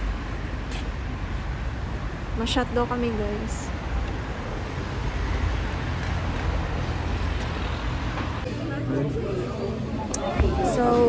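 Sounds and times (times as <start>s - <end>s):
vehicle passing on street: 0.0s - 8.9s.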